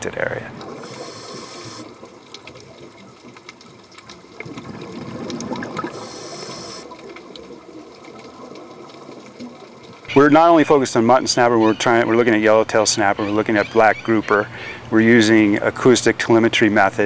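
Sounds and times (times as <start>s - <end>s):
underwater water noise: 0.0s - 17.0s.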